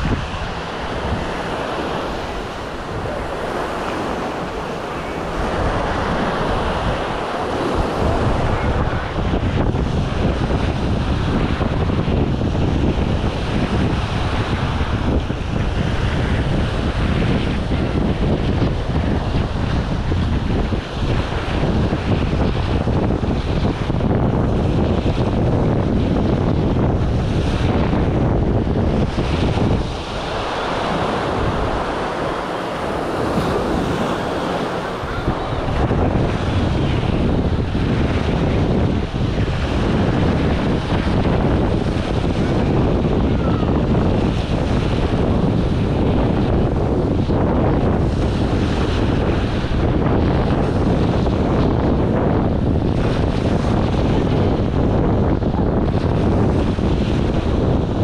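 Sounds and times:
small waves breaking on sand: 0:00.0 - 0:58.0
wind rumbling on microphone: 0:00.0 - 0:58.0.

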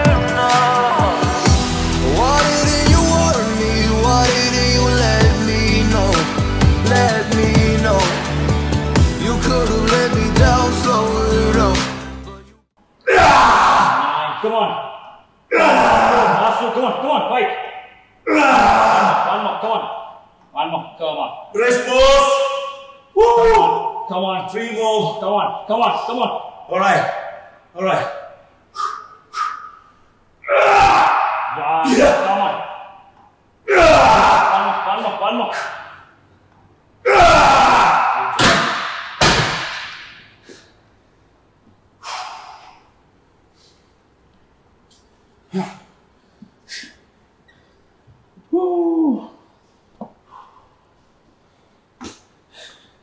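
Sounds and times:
man groaning with exertion: 0:15.5 - 0:16.8, 0:18.3 - 0:19.7.

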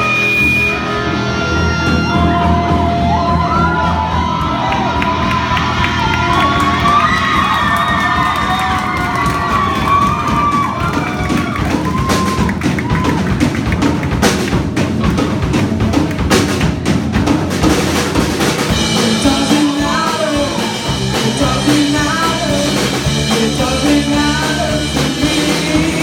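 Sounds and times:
live rock band playing: 0:00.0 - 0:26.0
drum hits: 0:01.9 - 0:26.0.

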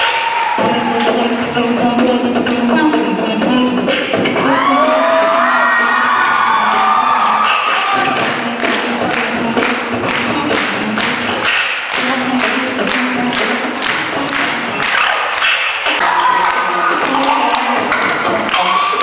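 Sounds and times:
beatboxing through speakers: 0:00.0 - 0:19.0
vocal melody: 0:00.0 - 0:19.0.

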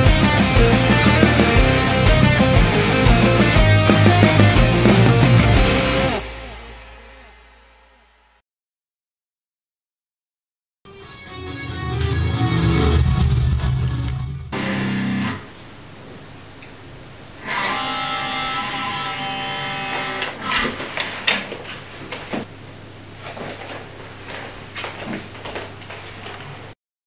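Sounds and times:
electric guitar chords: 0:00.0 - 0:07.9, 0:10.9 - 0:15.6, 0:17.4 - 0:20.6.

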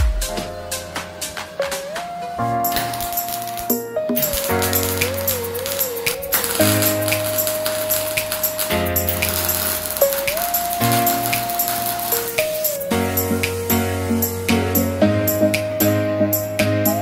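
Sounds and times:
held synth melody: 0:02.3 - 0:15.6
fast ticking beat: 0:02.6 - 0:13.8.

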